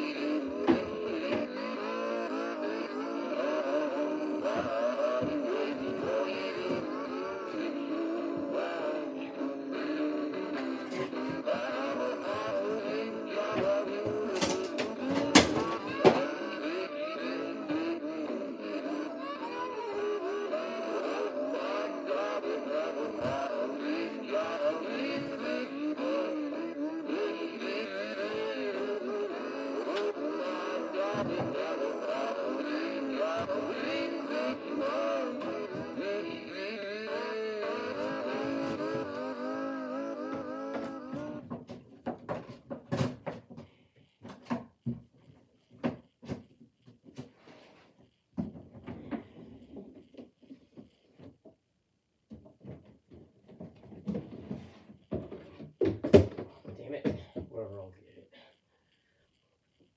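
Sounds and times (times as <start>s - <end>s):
toy figure singing a song: 0.0s - 41.5s.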